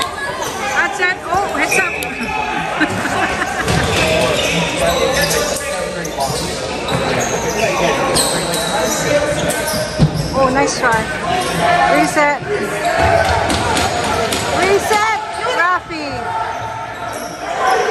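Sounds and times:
players shouting: 0:00.0 - 0:17.9.

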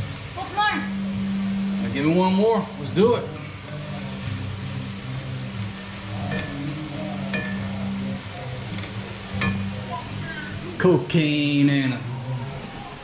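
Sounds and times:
food sizzling in a pot: 0:00.0 - 0:13.0
music: 0:00.0 - 0:13.0.

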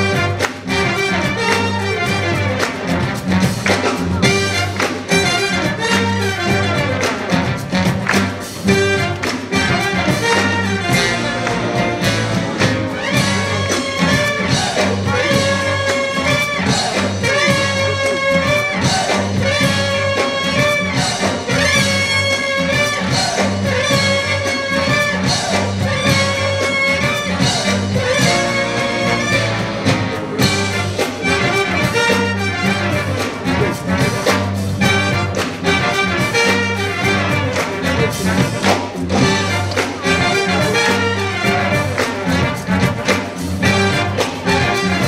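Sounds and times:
jazz big band playing: 0:00.0 - 0:45.0.

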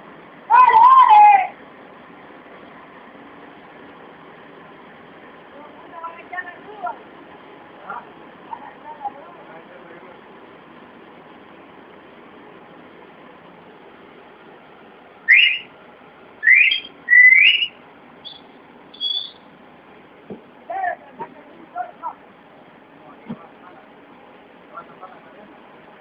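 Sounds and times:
steady background noise: 0:00.0 - 0:26.0
loud whistled notes: 0:15.3 - 0:15.7, 0:16.4 - 0:19.5.

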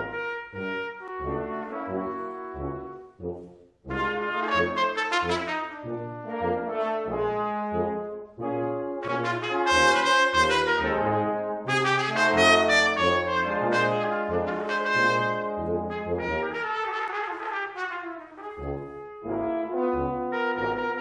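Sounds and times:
brass quintet playing jazz: 0:00.0 - 0:21.0.

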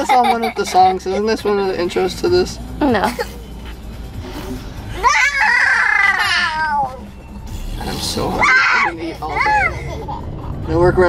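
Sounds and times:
meow-like vocal wail: 0:05.0 - 0:07.1.

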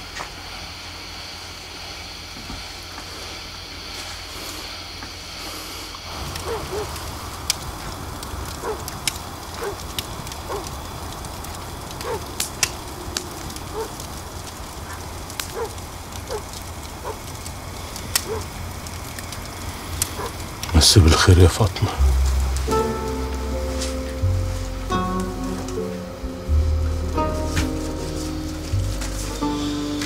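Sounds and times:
fire crackling and popping: 0:00.0 - 0:30.0
night ambience hiss: 0:00.0 - 0:30.0.

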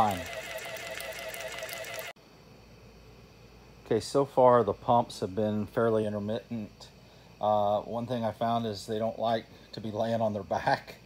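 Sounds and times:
dosing pump motor whining: 0:00.0 - 0:02.2
faint hiss: 0:02.2 - 0:11.0.

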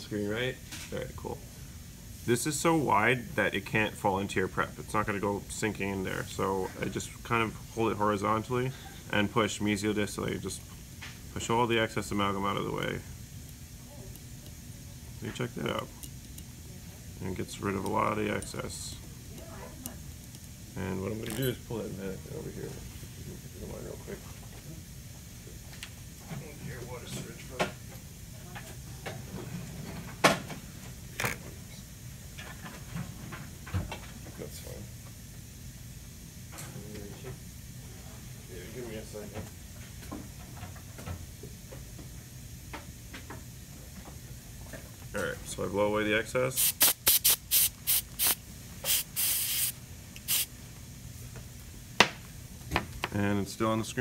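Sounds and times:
air syringe hissing bursts: 0:46.6 - 0:50.5.

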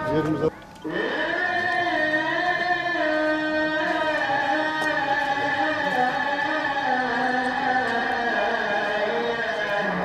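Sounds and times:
man chanting a prayer: 0:00.0 - 0:10.0.

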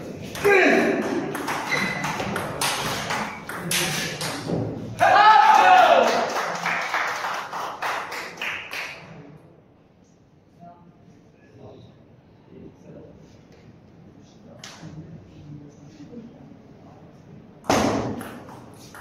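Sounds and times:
person shouting: 0:05.0 - 0:06.1.

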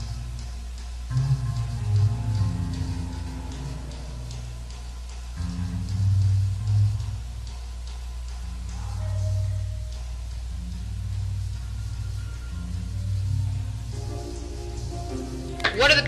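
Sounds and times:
low bass notes: 0:00.0 - 0:16.0
band playing instrumental: 0:14.0 - 0:16.0.

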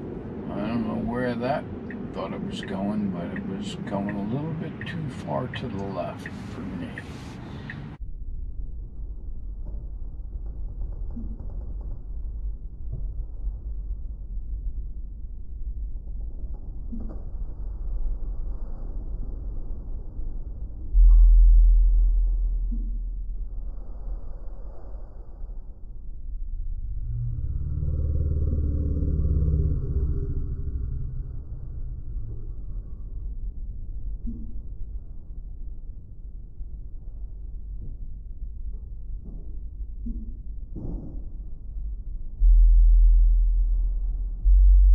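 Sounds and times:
steady hum: 0:00.0 - 0:44.9.

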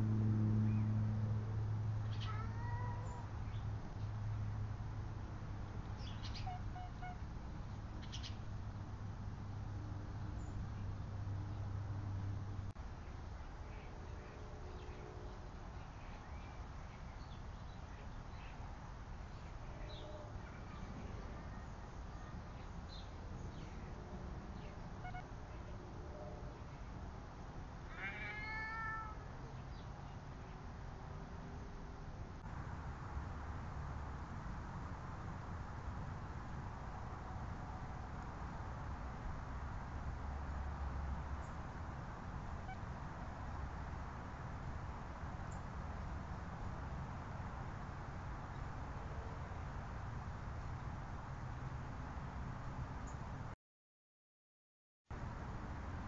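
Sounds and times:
faint low rumble: 0:00.0 - 0:27.5
cat meowing: 0:02.1 - 0:03.3, 0:27.9 - 0:29.3.

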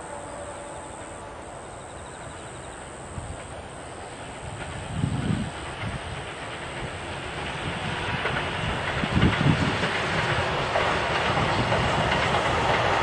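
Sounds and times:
train wheels on rails: 0:00.0 - 0:13.0.

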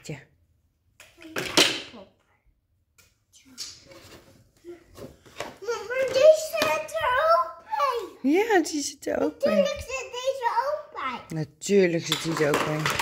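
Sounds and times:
toddler babbling: 0:05.6 - 0:08.2.

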